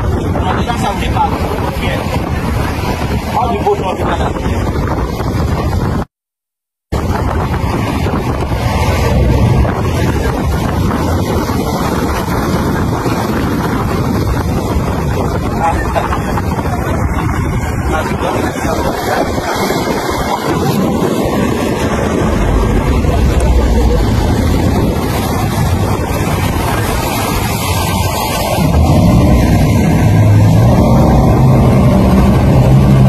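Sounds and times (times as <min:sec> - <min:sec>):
water rushing past hull: 0:00.0 - 0:06.1, 0:06.9 - 0:33.0
wind buffeting microphone: 0:00.0 - 0:06.1, 0:06.9 - 0:33.0
motorboat engine: 0:07.0 - 0:33.0.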